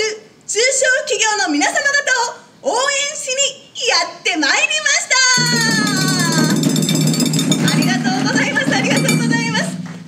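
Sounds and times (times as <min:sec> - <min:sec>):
fast drum roll: 0:05.3 - 0:10.0.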